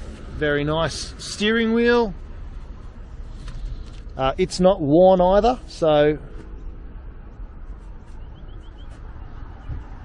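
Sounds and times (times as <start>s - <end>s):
low outdoor rumble: 0.0s - 10.0s
small bird chirping: 7.8s - 9.9s.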